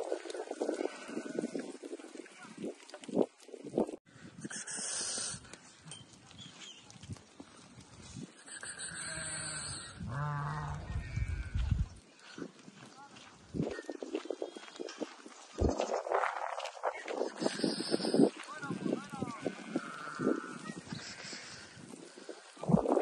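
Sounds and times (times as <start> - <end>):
sheep bleating: 0.6 - 1.7, 8.4 - 11.6, 19.3 - 21.7.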